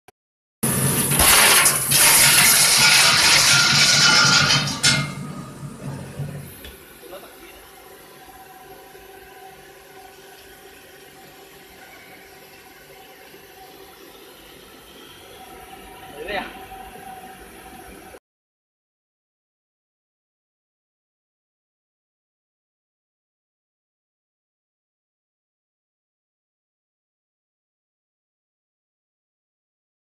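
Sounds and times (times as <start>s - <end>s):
factory machinery hum: 0.6s - 18.2s.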